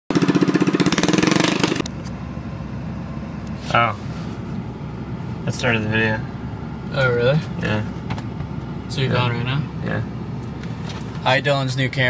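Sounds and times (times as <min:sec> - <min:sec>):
go-kart engine puttering: 0:00.1 - 0:02.1.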